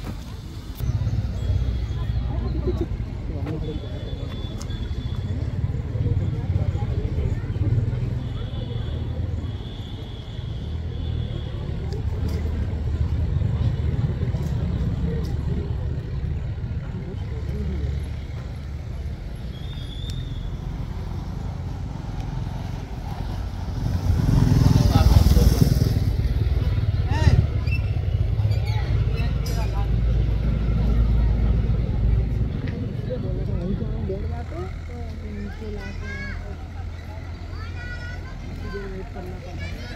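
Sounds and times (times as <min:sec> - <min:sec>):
faint voices: 0:00.0 - 0:19.6, 0:20.4 - 0:39.9.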